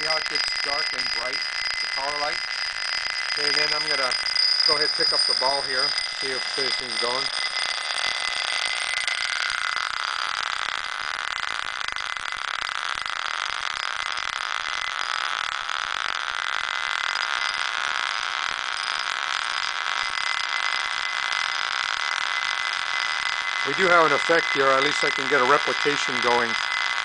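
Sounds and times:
steel ball rolling in glass bowl: 0.0 - 27.0.

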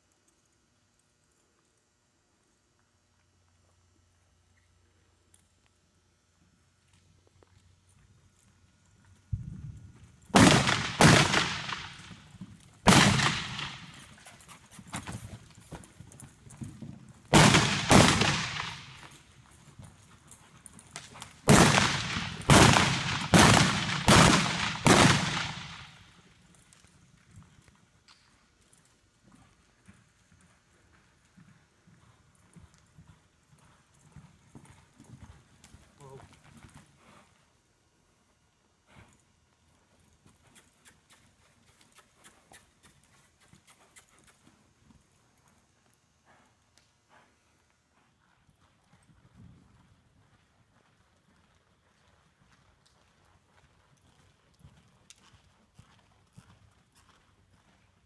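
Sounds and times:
hoofbeats on dirt: 6.8 - 58.0.

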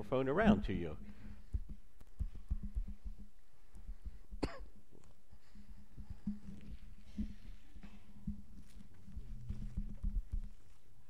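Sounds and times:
soft low thumps: 0.0 - 11.0
steady low hum: 0.0 - 11.0
person coughing: 4.4 - 4.8.

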